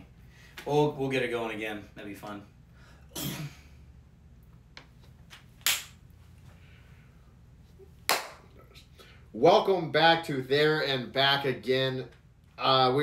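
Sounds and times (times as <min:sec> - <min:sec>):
sharp smacks: 0:05.6 - 0:06.0.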